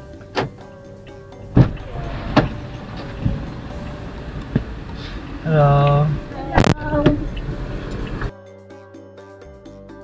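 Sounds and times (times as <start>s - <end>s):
car engine rumbling: 0.0s - 8.3s
dull thud: 1.5s - 3.7s.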